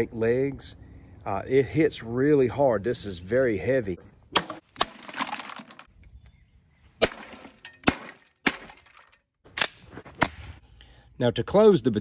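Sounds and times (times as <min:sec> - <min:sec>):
baton striking plastic: 0:04.4 - 0:05.9, 0:07.0 - 0:10.6.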